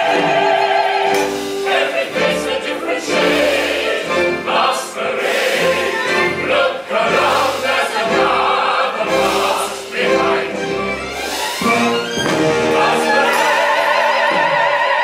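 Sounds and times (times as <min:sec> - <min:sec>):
chorus singing: 0:00.0 - 0:15.0
orchestra playing chords: 0:00.0 - 0:15.0.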